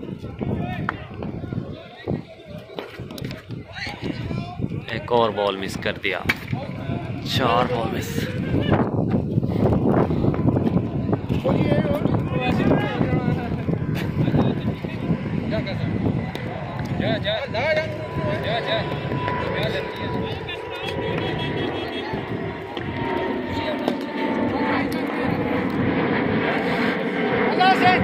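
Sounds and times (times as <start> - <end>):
droning hum with whining tones: 0.0 - 28.0.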